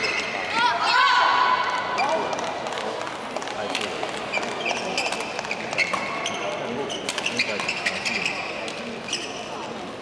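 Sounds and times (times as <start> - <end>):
court shoes squeaking: 0.0 - 0.6, 1.7 - 10.0
rackets hitting shuttlecocks: 1.8 - 6.2, 7.0 - 8.0.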